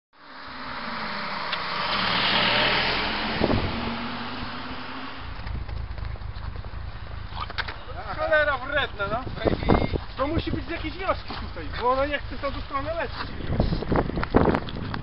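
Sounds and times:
car running on road: 0:00.2 - 0:15.0
low rumble: 0:02.8 - 0:15.0.

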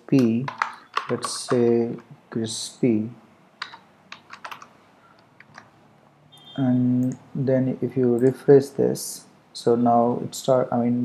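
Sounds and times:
computer keyboard typing: 0:00.2 - 0:01.7, 0:03.6 - 0:05.7.

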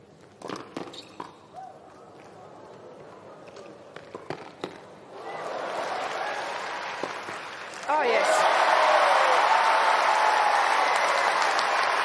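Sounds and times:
crowd cheering: 0:05.1 - 0:12.0.

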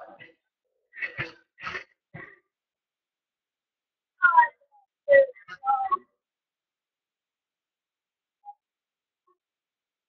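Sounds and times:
boy making high-pitched vocal sounds: 0:04.2 - 0:06.0.

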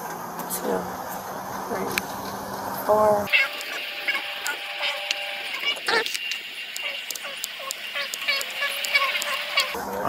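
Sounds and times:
thin steady high tone: 0:03.0 - 0:10.0.

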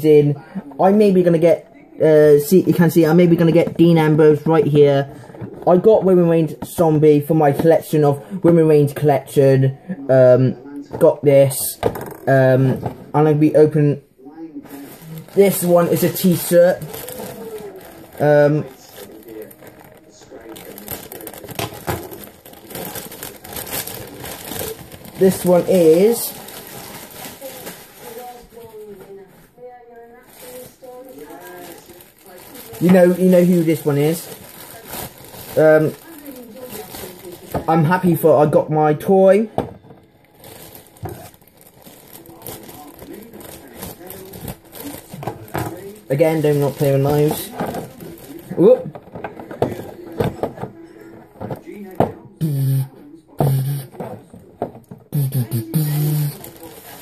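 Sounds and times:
plastic packaging rustling: 0:00.4 - 0:09.8, 0:10.7 - 0:13.8, 0:14.6 - 0:57.0
man humming a tune: 0:52.4 - 0:53.9, 0:55.1 - 0:56.4
faint voice murmuring: 0:55.1 - 0:57.0.

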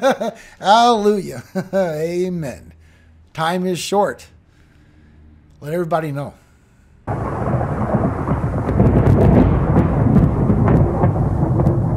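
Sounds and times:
rolling thunder: 0:07.1 - 0:11.9
sharp crackles: 0:07.1 - 0:11.9
steady rain: 0:07.1 - 0:11.9.

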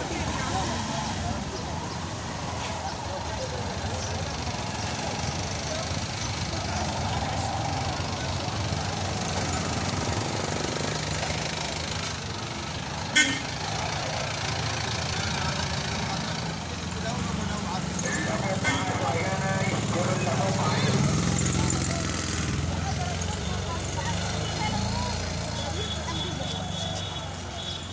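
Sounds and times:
many voices talking: 0:00.0 - 0:27.9
traffic engine hum: 0:00.0 - 0:27.9.

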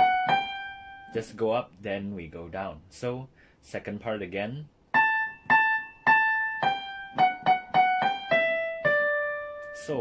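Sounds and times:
digital piano melody: 0:00.0 - 0:01.3, 0:04.9 - 0:10.0.

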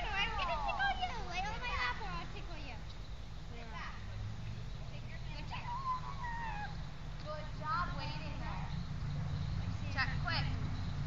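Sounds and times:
faint high-pitched gliding calls: 0:04.9 - 0:06.8.

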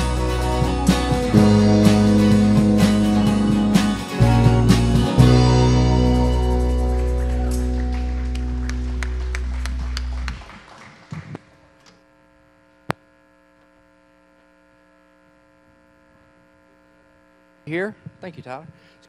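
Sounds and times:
band chord on keyboard and guitars: 0:00.0 - 0:10.3
faint electrical hum: 0:07.9 - 0:19.0.

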